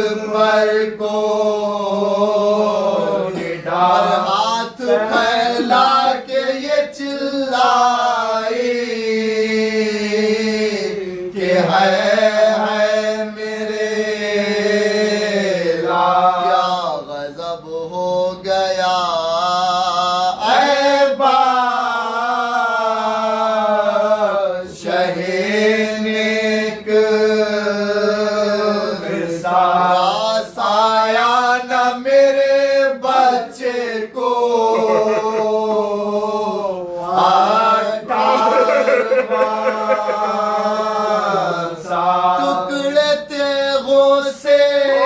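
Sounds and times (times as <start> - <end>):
men chanting an elegy: 0.0 - 17.1, 19.0 - 45.0.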